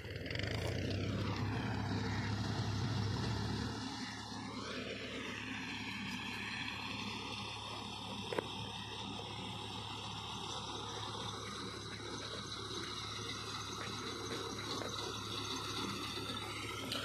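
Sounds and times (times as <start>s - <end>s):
tractor engine running: 0.0s - 17.0s.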